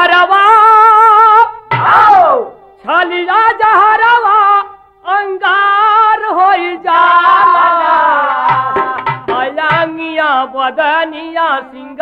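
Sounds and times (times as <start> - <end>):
high voice singing: 0.0 - 12.0.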